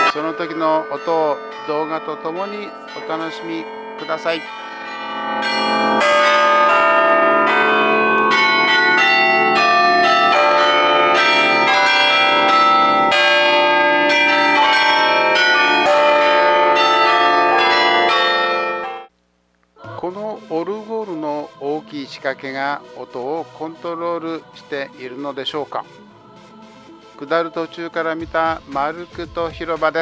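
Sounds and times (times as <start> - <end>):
carillon bells playing a tune: 0.0 - 19.1.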